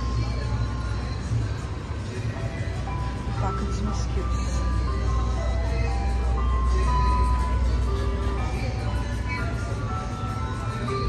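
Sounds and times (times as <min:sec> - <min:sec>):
ice cream truck chime melody: 0:00.0 - 0:11.0.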